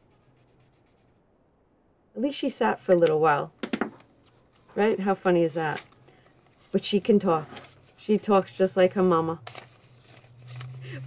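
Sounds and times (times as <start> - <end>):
marker scratching on paper: 0.0 - 1.2.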